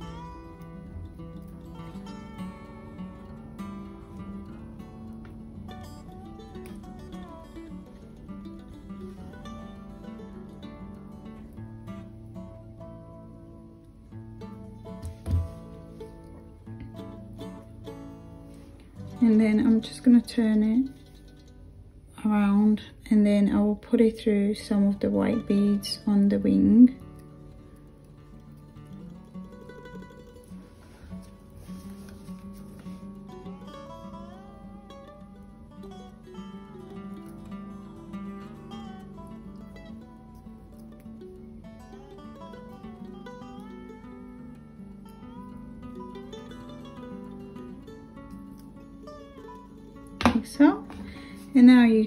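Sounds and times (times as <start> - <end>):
plucked acoustic guitar music: 0.0 - 52.0
person's voice: 22.2 - 27.0, 50.3 - 52.0.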